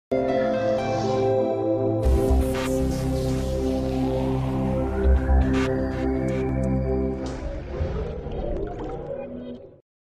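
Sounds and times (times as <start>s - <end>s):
electronic intro jingle: 0.9s - 8.4s.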